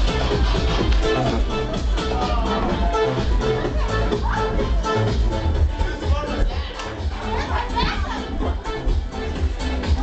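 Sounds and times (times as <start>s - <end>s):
dance music with bass beat: 0.0s - 10.0s
people shouting and shrieking: 2.0s - 5.0s, 6.2s - 8.6s.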